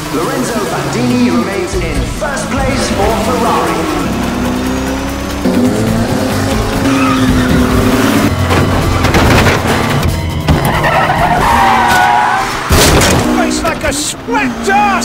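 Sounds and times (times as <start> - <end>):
race car engines at speed: 0.0 - 15.0
loud crash impact: 12.7 - 13.4.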